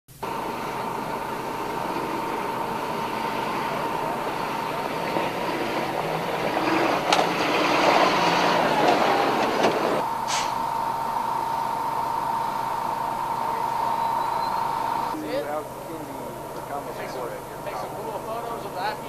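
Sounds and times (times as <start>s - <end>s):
heavy vehicles driving past: 0.1s - 19.0s
thin high tone: 10.0s - 19.0s.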